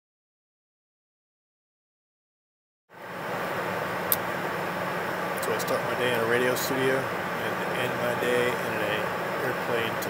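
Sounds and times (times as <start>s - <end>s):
airplane cabin noise: 3.0s - 10.0s
sharp click: 4.1s - 4.3s.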